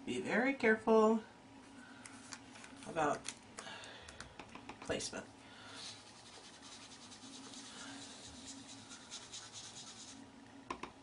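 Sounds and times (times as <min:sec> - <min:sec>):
sponge dabbing on card: 0:05.8 - 0:10.2.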